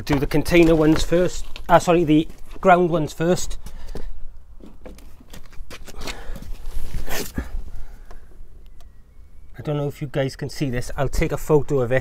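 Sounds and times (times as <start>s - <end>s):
rustling and scuffing: 0.0s - 7.7s
breathy bursts: 5.9s - 8.6s.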